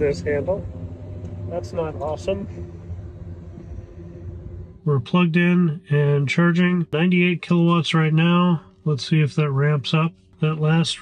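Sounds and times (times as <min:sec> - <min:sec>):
faint constant hum: 0:00.0 - 0:11.0
low background rumble: 0:00.0 - 0:11.0
man's voice: 0:04.9 - 0:11.0.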